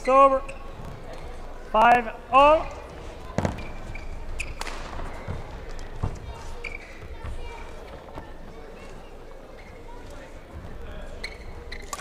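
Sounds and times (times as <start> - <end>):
shoe squeaks on court floor: 0.0 - 1.5, 2.6 - 7.2, 9.5 - 10.1, 10.7 - 12.0.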